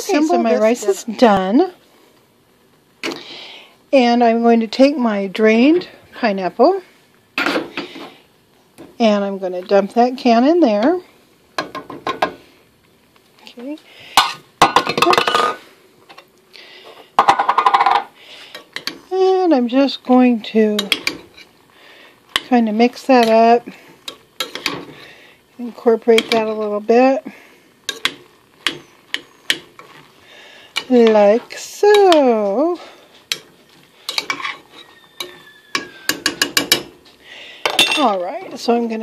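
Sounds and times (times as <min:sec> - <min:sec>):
spoon knocking on metal saucepan: 0:35.2 - 0:36.9.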